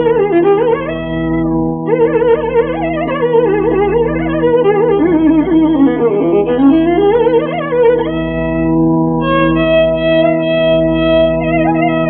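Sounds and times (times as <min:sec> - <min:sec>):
steady low drone: 0:00.0 - 0:12.0
violin bending a note: 0:00.0 - 0:12.0.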